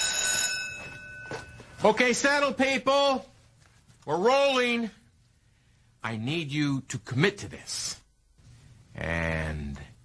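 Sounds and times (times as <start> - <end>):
studio bell ringing: 0.0 - 2.4
man speaking: 1.8 - 3.4, 4.0 - 5.0, 6.0 - 8.1, 8.9 - 10.0.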